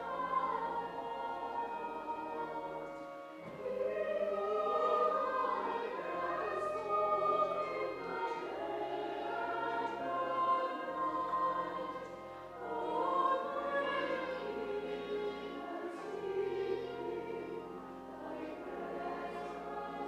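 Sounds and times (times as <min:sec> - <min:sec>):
church choir singing: 0:00.0 - 0:20.0.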